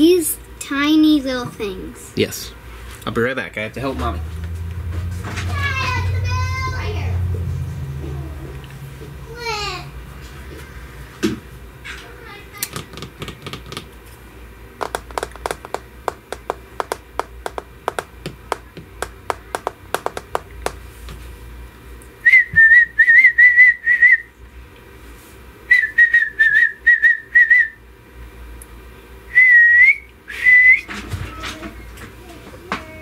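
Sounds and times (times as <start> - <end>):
child whistling: 22.3 - 24.3, 25.7 - 27.8, 29.3 - 30.9.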